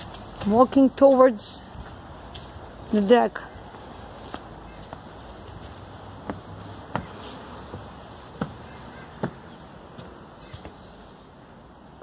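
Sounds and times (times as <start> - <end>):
footsteps on wooden boards: 0.0 - 2.9, 3.7 - 11.0.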